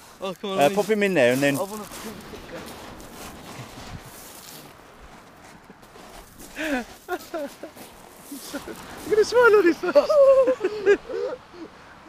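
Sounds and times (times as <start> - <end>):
footsteps crunching on pebbles: 0.0 - 9.1.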